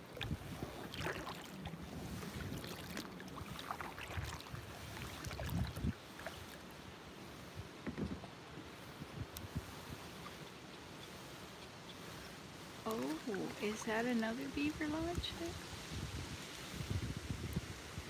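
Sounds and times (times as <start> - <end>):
paddle splashes and drips: 0.0 - 18.0.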